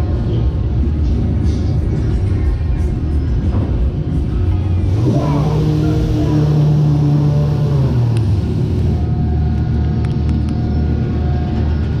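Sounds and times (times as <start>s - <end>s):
fairground ride machinery humming: 0.0s - 12.0s.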